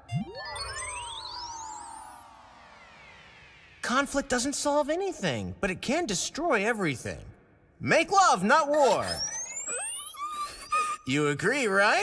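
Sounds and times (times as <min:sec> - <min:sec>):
rising cartoon whistle: 0:00.0 - 0:03.7, 0:09.0 - 0:11.0.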